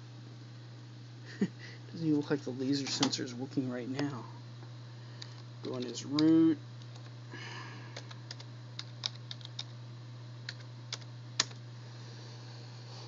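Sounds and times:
computer keyboard typing: 0:08.0 - 0:09.7, 0:10.5 - 0:11.6.

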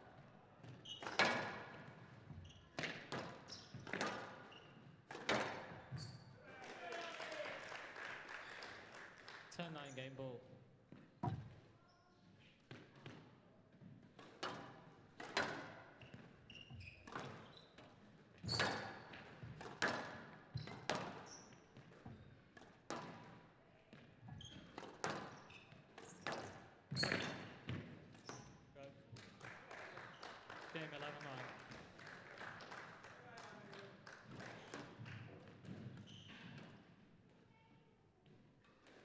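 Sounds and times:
shoe squeaks on floor: 0:00.6 - 0:01.5, 0:02.3 - 0:05.0, 0:05.8 - 0:06.4, 0:15.9 - 0:19.2, 0:20.5 - 0:22.4, 0:24.3 - 0:27.6, 0:28.2 - 0:28.6, 0:35.8 - 0:36.8.

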